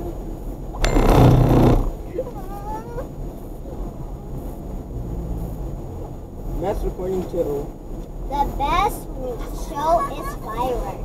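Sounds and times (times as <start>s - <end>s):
road and engine hum in car: 0.0s - 11.0s.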